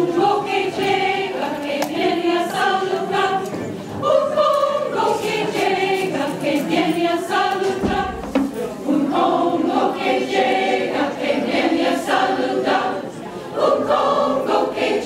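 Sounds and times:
choir singing in harmony: 0.0s - 15.0s.

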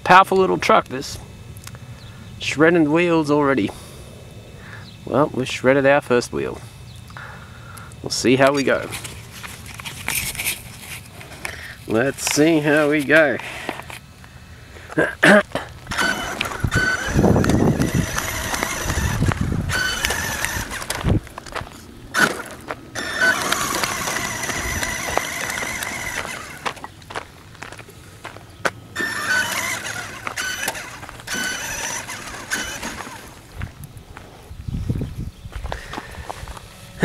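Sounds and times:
rc truck motor whining: 6.6s - 14.9s, 15.7s - 27.2s, 28.9s - 34.0s.

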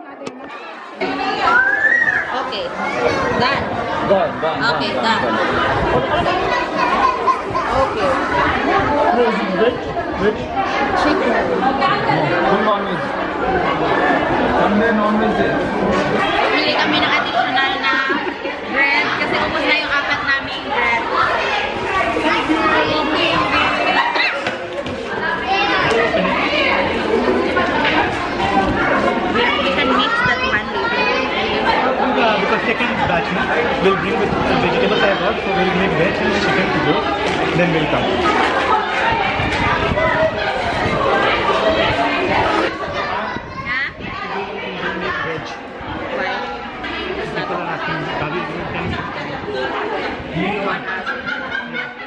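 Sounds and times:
people chattering: 0.0s - 52.0s
children calling out: 0.5s - 3.6s, 6.2s - 9.0s, 21.0s - 32.2s.

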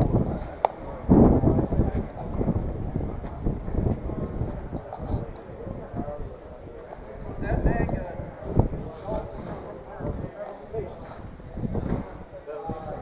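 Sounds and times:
indistinct voices talking: 0.0s - 13.0s.

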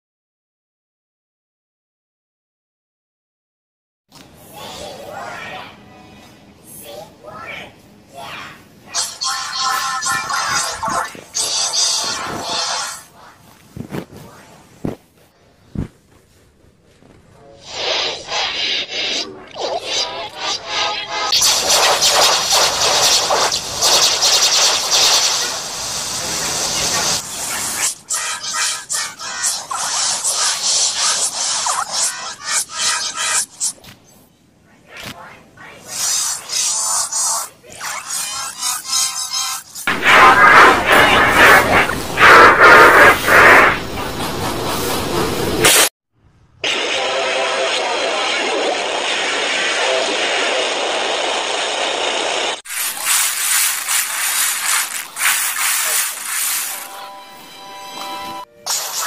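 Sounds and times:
pitch-shifted music and voice: 4.4s - 14.7s, 17.4s - 33.8s, 34.7s - 43.8s, 46.6s - 51.3s, 53.8s - 59.0s.

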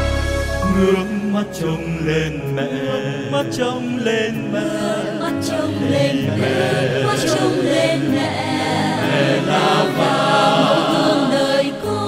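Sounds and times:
instrumental accompaniment: 0.0s - 11.6s
chant-like hymn singing: 0.0s - 12.0s.

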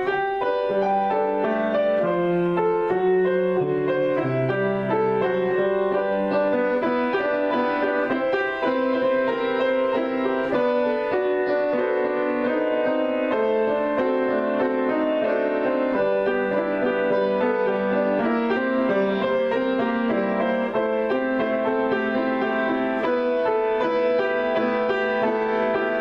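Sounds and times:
solo piano piece: 0.0s - 26.0s.

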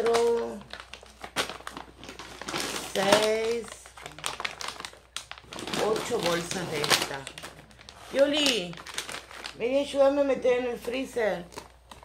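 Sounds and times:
sharp plastic crackle: 0.0s - 9.9s, 10.8s - 12.0s
plastic packaging crinkling: 0.0s - 10.1s, 10.7s - 12.0s.

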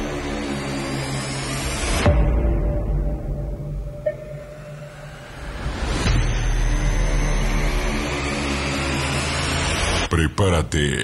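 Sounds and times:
electronic low drone with tones: 0.0s - 10.1s.

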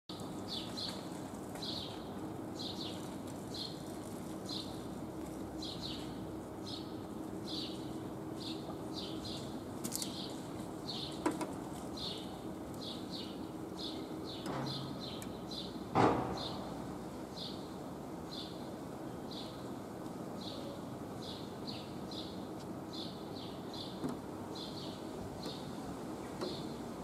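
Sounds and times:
steady low hum: 0.1s - 27.0s
sharp knock: 16.0s - 16.7s.

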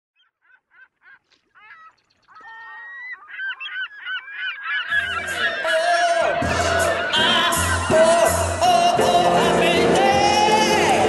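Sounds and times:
flock of birds calling: 0.2s - 11.0s.

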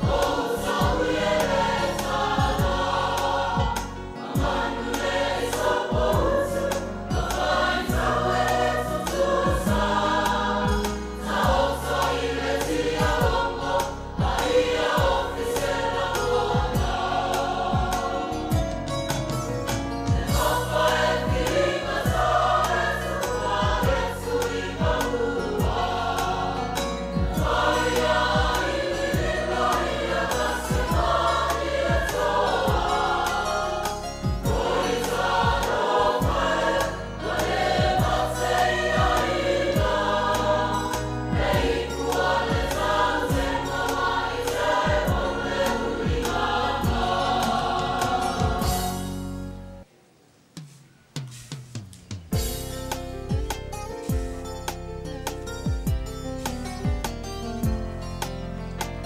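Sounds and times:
choir singing in harmony: 0.0s - 49.9s.

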